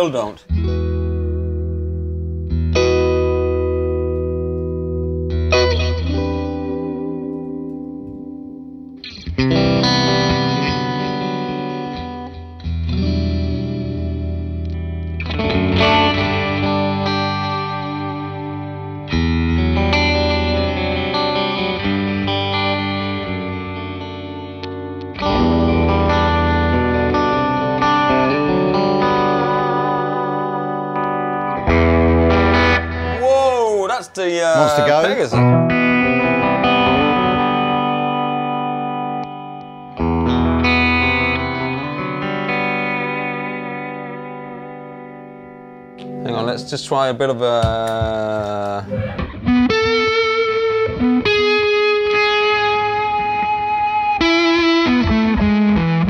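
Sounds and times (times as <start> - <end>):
electric guitar through amp: 0.0 - 33.7, 34.6 - 46.5, 47.6 - 56.0.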